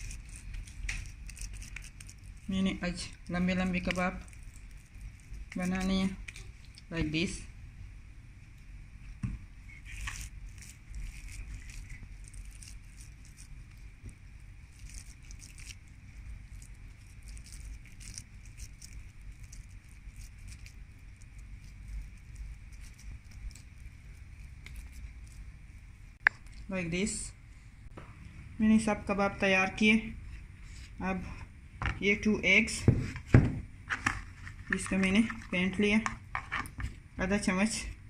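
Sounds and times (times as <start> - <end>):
hands squishing and patting mixture: 0.0 - 7.0, 9.0 - 26.8.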